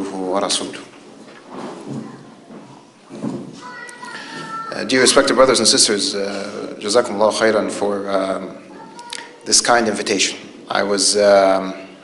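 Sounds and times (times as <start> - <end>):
faint voice: 3.6 - 4.9.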